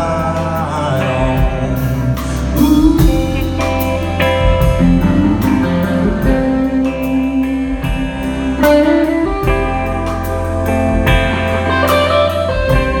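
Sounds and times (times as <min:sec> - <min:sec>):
bass guitar: 0:00.0 - 0:13.0
drums: 0:00.0 - 0:13.0
electric guitar lead: 0:00.0 - 0:13.0.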